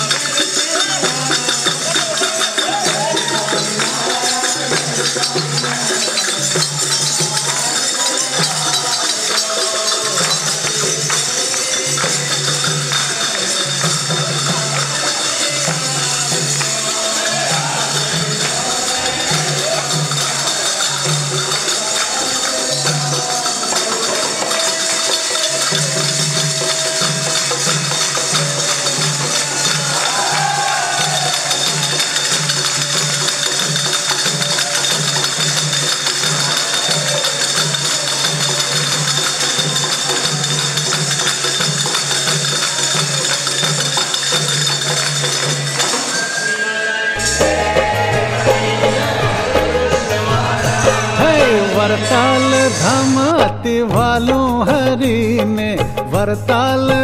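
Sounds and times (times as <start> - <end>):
steady drum beat: 0.0 - 46.1, 47.2 - 57.0
jingling hand percussion: 0.0 - 57.0.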